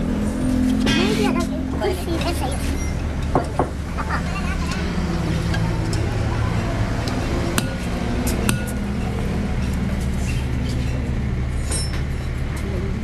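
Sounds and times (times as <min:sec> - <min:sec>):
low engine hum: 0:00.0 - 0:13.0
tools clinking on metal hub: 0:11.6 - 0:12.1.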